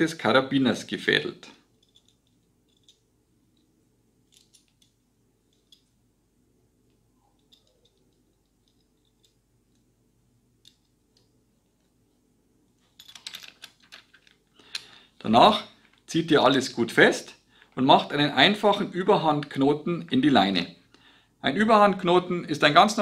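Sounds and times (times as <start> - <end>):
small metal clicks: 1.7 - 6.0, 6.8 - 10.0, 10.6 - 12.0, 12.7 - 15.0.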